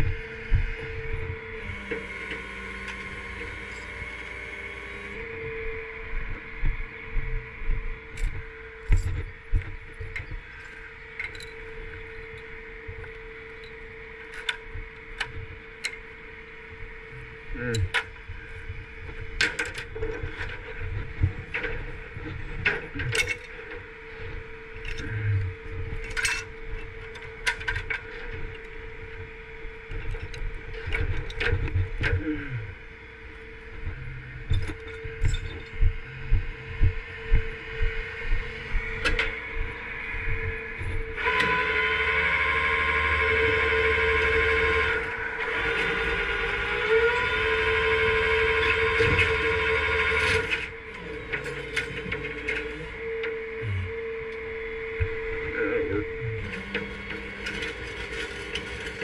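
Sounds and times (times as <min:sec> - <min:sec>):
hydraulic winch whine: 0:00.0 - 0:06.1, 0:08.1 - 0:59.0
steady hum: 0:00.0 - 0:59.0.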